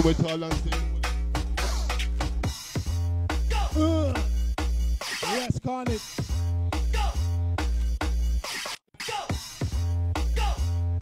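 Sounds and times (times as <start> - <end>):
heavy sub-bass notes: 0.0 - 5.0, 6.2 - 8.4, 9.6 - 11.0
grime instrumental: 0.0 - 11.0.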